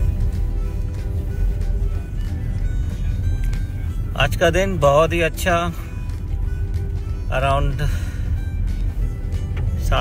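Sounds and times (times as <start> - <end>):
car road and engine rumble: 0.0 - 10.0
music playing: 0.0 - 10.0.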